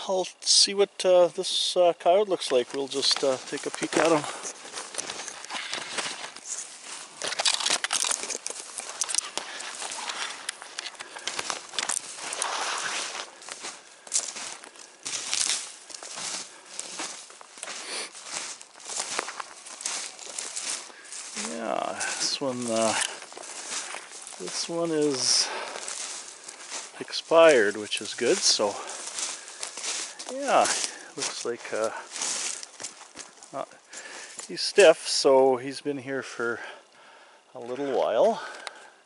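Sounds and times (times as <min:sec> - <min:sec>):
footsteps crunching through snow: 0:02.1 - 0:35.3
brushing past dry twigs: 0:02.4 - 0:35.3.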